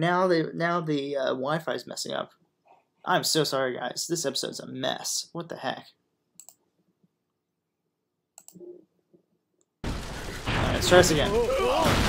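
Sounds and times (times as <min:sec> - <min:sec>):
computer mouse clicks: 0:06.4 - 0:06.6, 0:08.4 - 0:08.7
loud anime episode audio: 0:09.8 - 0:12.0.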